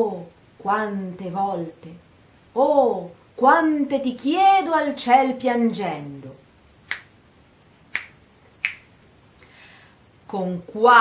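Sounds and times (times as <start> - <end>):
short sharp clicks: 6.8 - 7.2, 7.9 - 8.9
soft intake of breath: 9.4 - 10.1.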